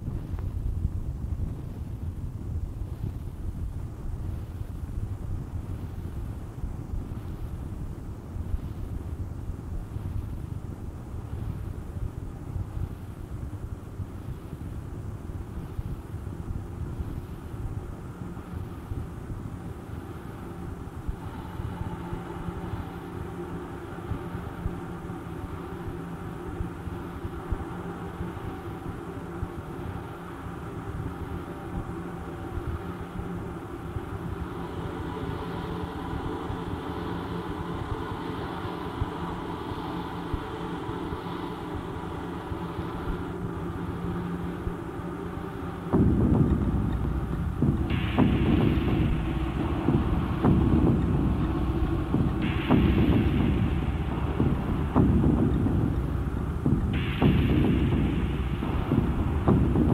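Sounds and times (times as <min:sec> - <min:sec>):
droning hum with held tones: 0:00.0 - 0:59.9
loud bass-heavy rumbling: 0:00.0 - 0:59.9.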